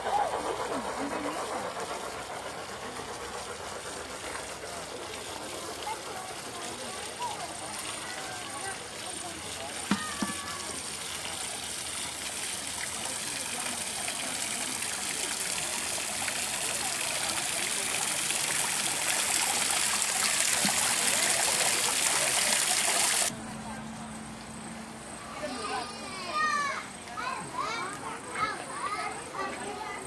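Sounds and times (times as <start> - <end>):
small waterfall splashing into pool: 4.7 - 23.3.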